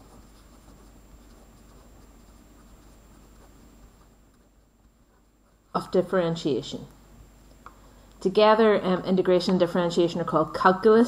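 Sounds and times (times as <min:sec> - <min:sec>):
pen scratching on paper: 0:00.0 - 0:06.5.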